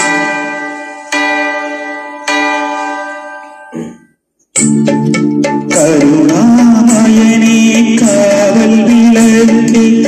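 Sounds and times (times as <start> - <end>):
bell-like sustained chords: 0.0 - 3.8.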